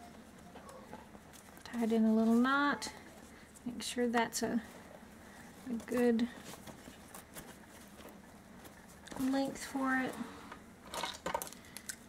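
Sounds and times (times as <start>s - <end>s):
hands handling craft materials: 0.1s - 12.0s.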